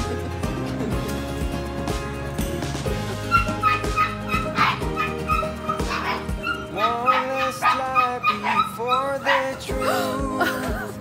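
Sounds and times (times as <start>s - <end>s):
background music with steady beat: 0.0s - 11.0s
puppies yipping and whimpering: 3.2s - 10.0s.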